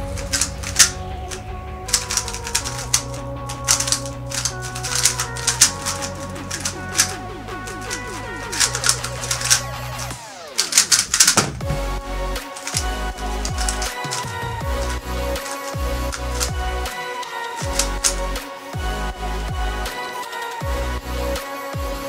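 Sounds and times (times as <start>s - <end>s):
puzzle cube clicking: 0.1s - 1.4s, 2.0s - 11.7s, 12.4s - 14.4s, 15.4s - 18.2s.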